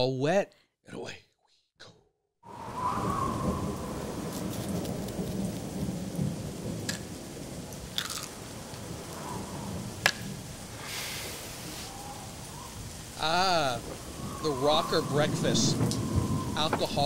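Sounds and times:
rolling thunder: 2.5s - 17.0s
steady rain: 2.5s - 17.0s.

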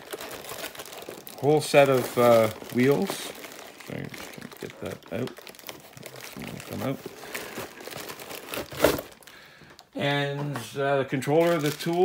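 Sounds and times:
plastic bag crinkling: 0.0s - 9.9s, 11.2s - 12.0s
cardboard box rustling: 5.3s - 9.2s.

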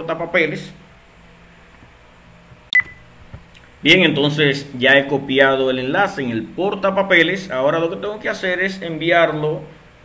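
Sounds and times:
person speaking: 3.8s - 9.8s.

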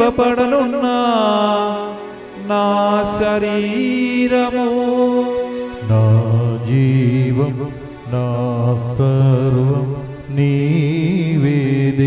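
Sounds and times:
man singing a slow chant: 0.0s - 12.0s.

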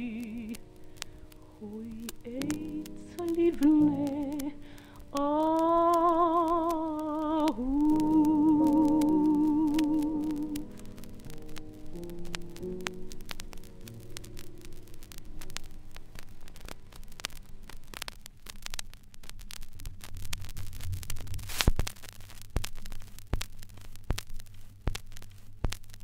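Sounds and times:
record crackles and clicks: 0.0s - 26.0s.

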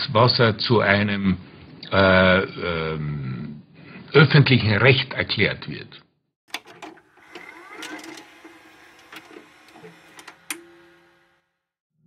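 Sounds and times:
tape deck mechanical clicks: 6.5s - 11.5s
motor whirring: 6.5s - 11.7s.

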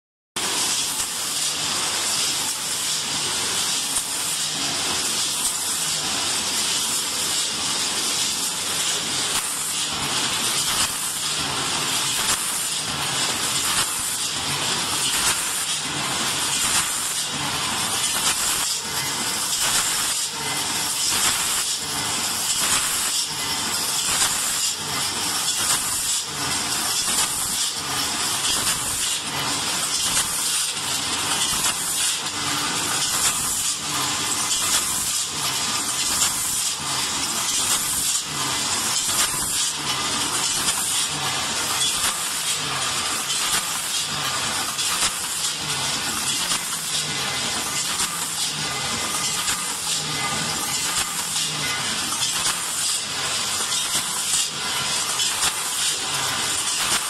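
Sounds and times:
machine clacks: 0.4s - 57.0s
packaging machine hiss: 0.4s - 57.0s.

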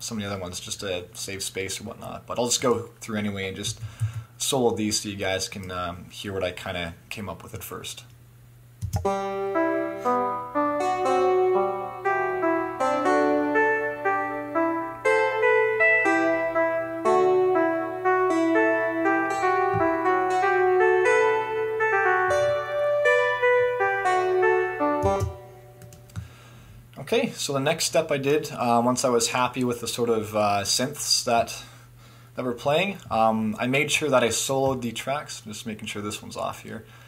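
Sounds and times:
synthesizer melody: 8.9s - 26.1s.

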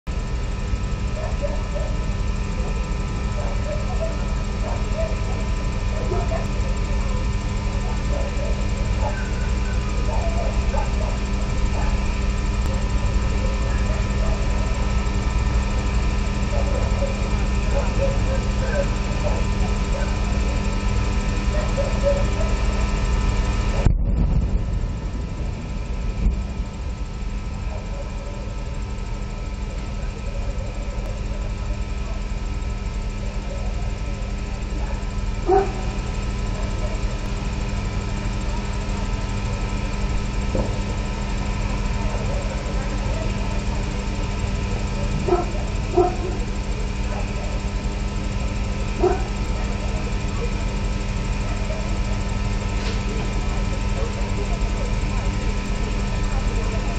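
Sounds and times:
low rumble: 23.8s - 27.1s.

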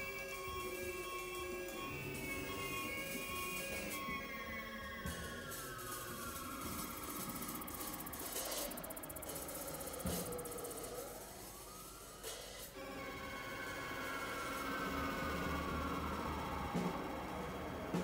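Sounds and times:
synthesizer sliding tones: 0.0s - 18.0s.

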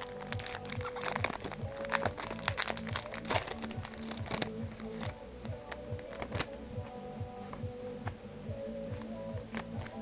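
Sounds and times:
plastic foil wrapper crinkling: 0.0s - 5.1s, 6.0s - 6.5s
background music: 0.0s - 10.0s.

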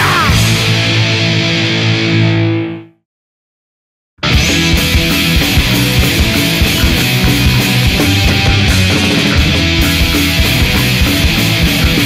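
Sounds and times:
distorted electric guitar chord: 4.2s - 12.0s.

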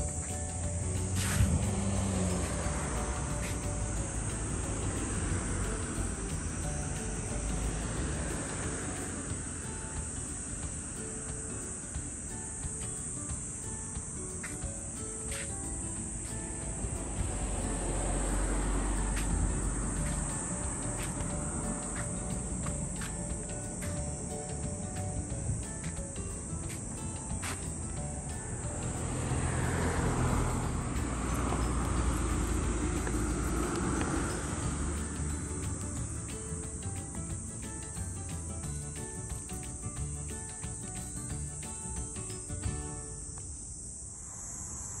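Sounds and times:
high-pitched insect drone: 0.0s - 45.0s.

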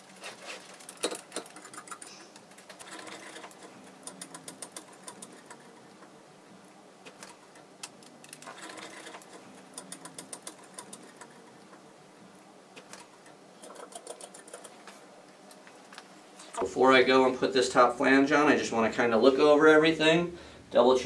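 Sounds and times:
metal nuts clicking on threaded rods: 0.9s - 5.8s, 7.1s - 11.4s, 12.8s - 14.8s.

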